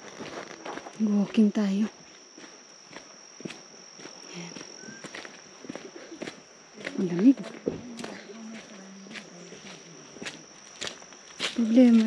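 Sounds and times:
high-pitched insect drone: 0.0s - 12.0s
footsteps on muddy track: 2.3s - 12.0s.

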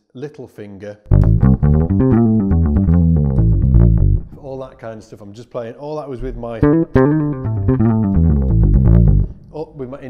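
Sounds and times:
electric bass plucked notes: 1.1s - 4.4s, 6.2s - 9.4s.

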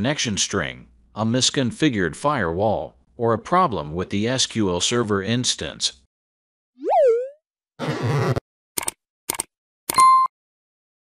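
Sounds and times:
cartoon pop tone swooping: 6.8s - 7.4s.

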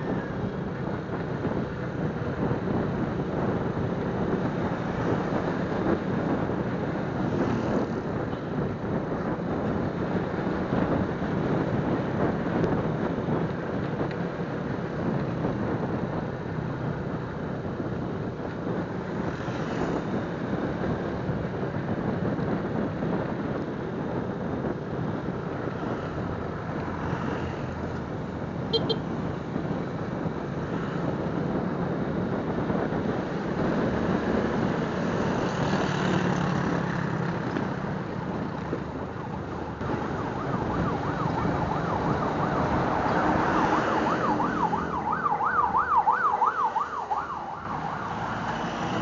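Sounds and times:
motorcycle road and wind rush: 0.0s - 49.0s
fast yelping siren: 39.8s - 48.2s.

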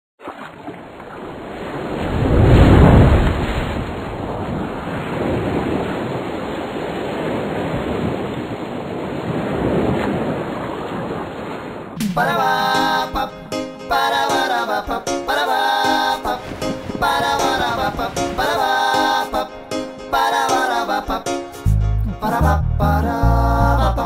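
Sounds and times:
ocean waves breaking: 0.2s - 21.5s.

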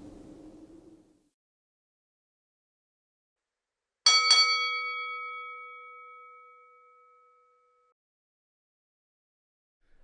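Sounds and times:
bell ringing: 4.1s - 8.0s.

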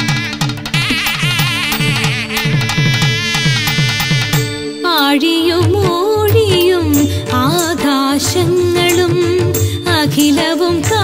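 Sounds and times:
high wavering melody: 0.0s - 11.0s.

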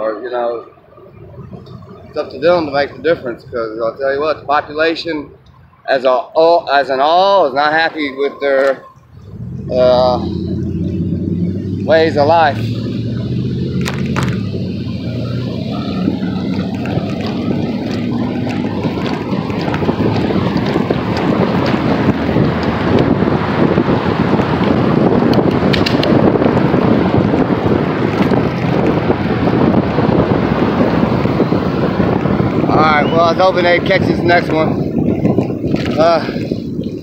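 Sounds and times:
street traffic: 0.0s - 37.0s
vehicle engine hum: 0.0s - 37.0s
wind buffeting microphone: 0.5s - 37.0s.

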